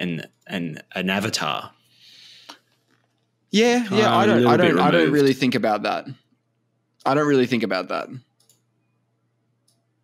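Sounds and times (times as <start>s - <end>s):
man speaking: 0.0s - 1.8s, 3.6s - 6.2s, 7.0s - 8.2s.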